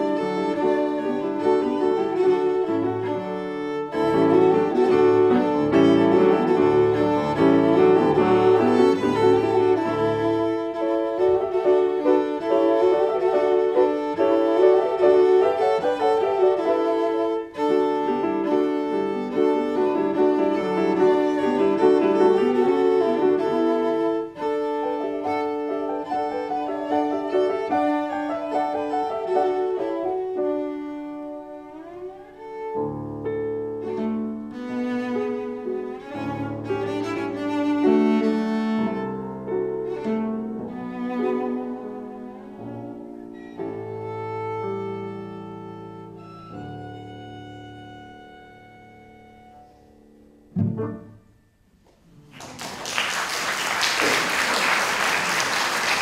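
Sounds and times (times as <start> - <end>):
cello and piano classical piece: 0.0 - 56.0.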